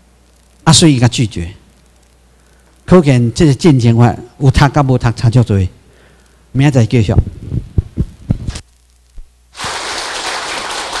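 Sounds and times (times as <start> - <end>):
audience applauding: 9.5 - 11.0.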